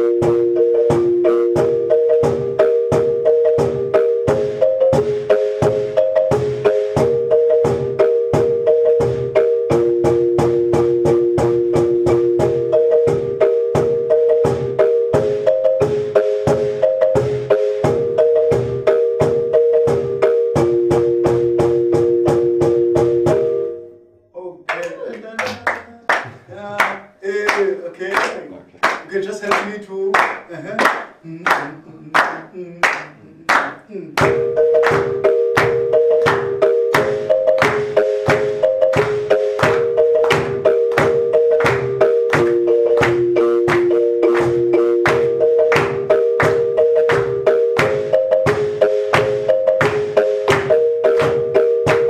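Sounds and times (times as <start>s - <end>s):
marimbas played with mallets: 0.0s - 23.8s, 34.2s - 52.0s
sharp claps on the beat: 24.7s - 52.0s.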